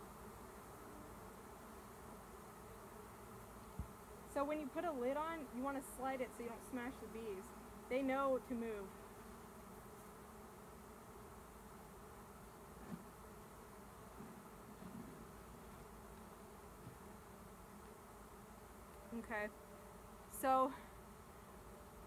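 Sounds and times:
bees buzzing: 0:00.0 - 0:22.0.

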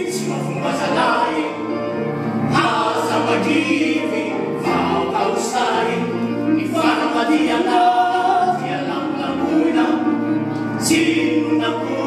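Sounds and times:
men singing in harmony: 0:00.0 - 0:12.0.

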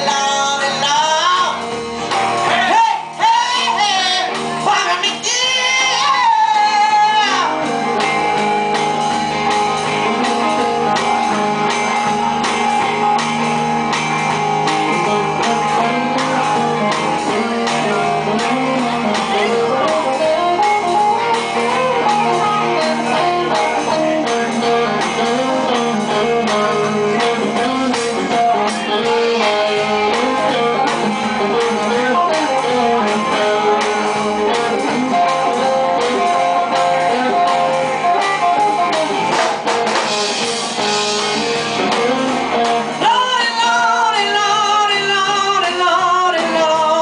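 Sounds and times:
woman singing: 0:00.0 - 0:01.8, 0:02.5 - 0:08.1, 0:43.0 - 0:47.0
blues rock guitars: 0:00.0 - 0:47.0
drums: 0:00.0 - 0:47.0.

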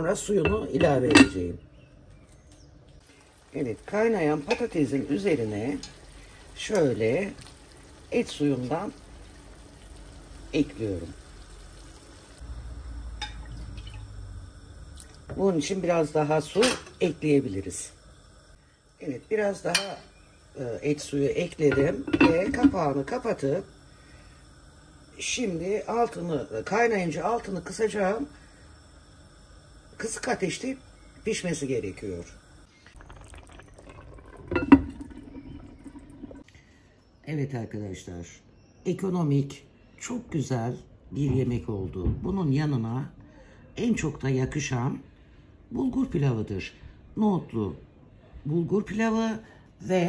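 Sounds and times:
stew bubbling in pot: 0:02.8 - 0:36.5
liquid pouring into pan: 0:03.0 - 0:25.2, 0:30.8 - 0:36.4.

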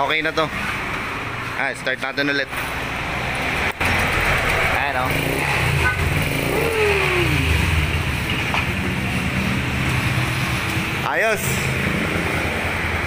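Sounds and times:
scooter engine idling: 0:03.8 - 0:09.6.

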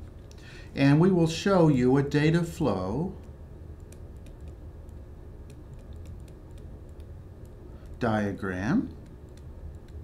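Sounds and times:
low steady hum: 0:00.0 - 0:10.0
stylus tapping on tablet screen: 0:03.8 - 0:08.0.

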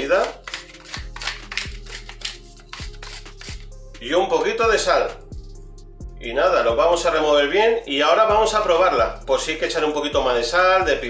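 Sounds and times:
pepper mill grinding: 0:00.0 - 0:03.6
background music with steady beat: 0:00.0 - 0:11.0.

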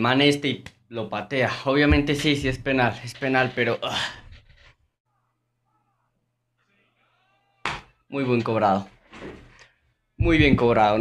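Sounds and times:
faint whining voice-like sound: 0:05.1 - 0:07.7.

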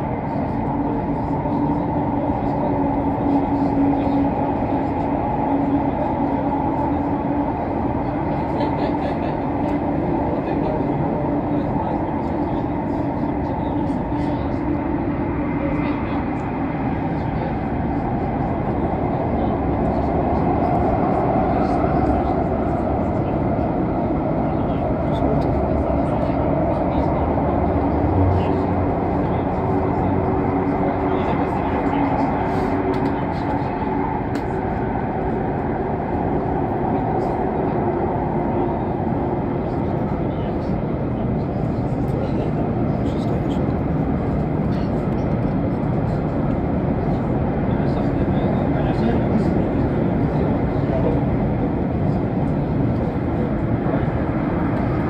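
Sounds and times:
train rumbling inside carriage: 0:00.0 - 0:55.0.

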